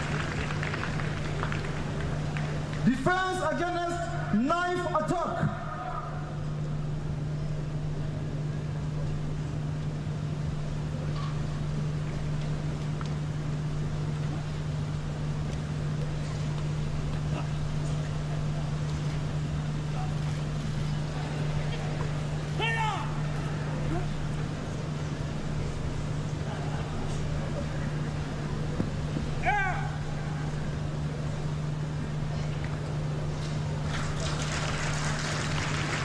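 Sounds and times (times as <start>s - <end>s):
steady low hum: 0.0s - 36.0s
person calling out: 22.6s - 23.2s, 29.4s - 30.1s.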